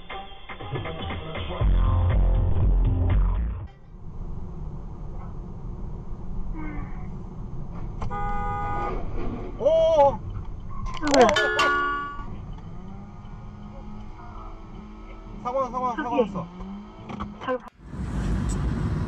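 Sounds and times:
car road rumble: 0:01.2 - 0:19.0
car horn: 0:08.0 - 0:09.1.

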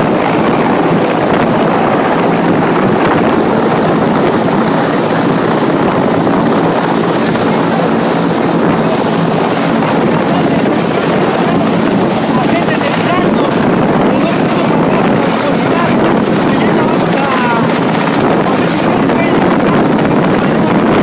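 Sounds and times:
loud steady engine drone: 0:00.0 - 0:21.0
voices: 0:00.0 - 0:21.0.

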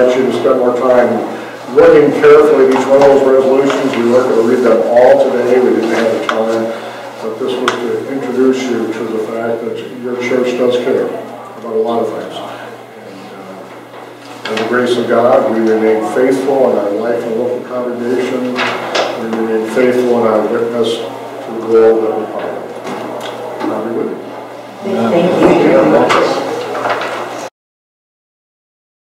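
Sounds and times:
man speaking: 0:00.0 - 0:13.7, 0:14.4 - 0:22.7, 0:23.6 - 0:26.6
people talking: 0:00.0 - 0:13.8, 0:14.4 - 0:26.8.

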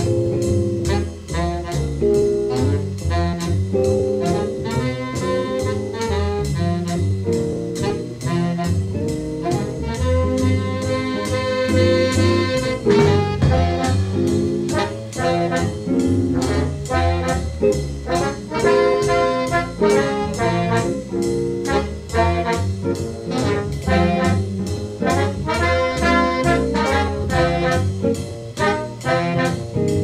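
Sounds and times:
big-band jazz brass and saxophones: 0:00.0 - 0:30.0.

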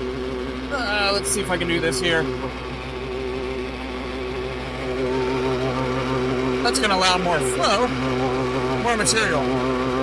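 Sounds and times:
engine humming: 0:00.0 - 0:10.0
high whine: 0:00.0 - 0:10.0.

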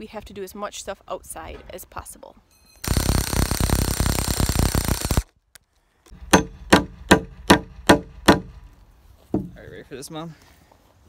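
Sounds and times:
power drill boring into wood: 0:02.8 - 0:05.3
ringing hammer blows on metal rod: 0:06.2 - 0:08.5.

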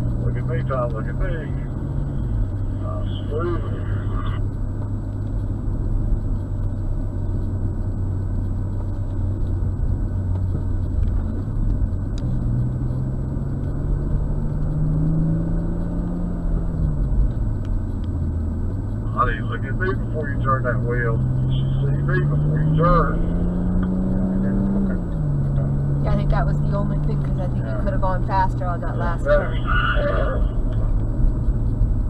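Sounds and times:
car engine from inside cabin: 0:00.0 - 0:32.0.

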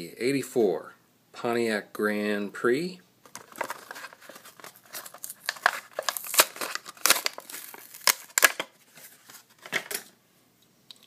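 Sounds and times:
plastic blister pack crinkling and tearing: 0:03.3 - 0:10.0.

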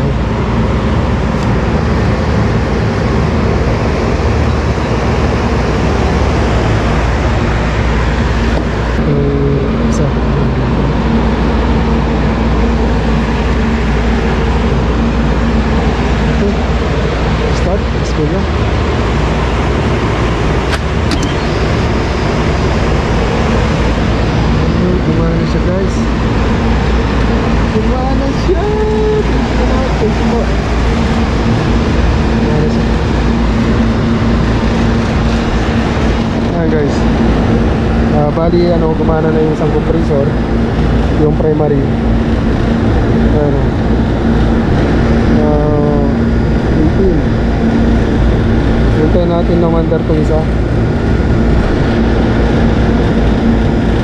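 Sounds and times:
air conditioner fans whooshing: 0:00.0 - 0:54.0
low steady hum: 0:00.0 - 0:54.0.

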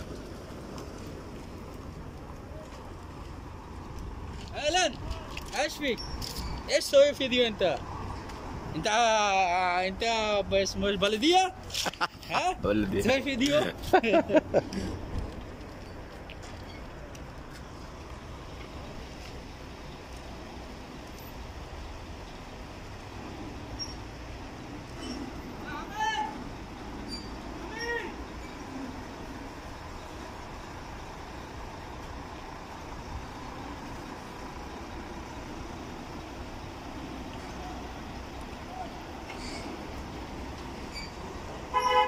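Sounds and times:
outdoor background noise: 0:00.0 - 0:42.0.

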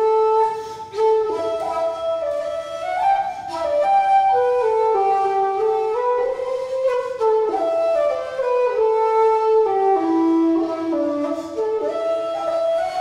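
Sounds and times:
wooden flute melody: 0:00.0 - 0:13.0.

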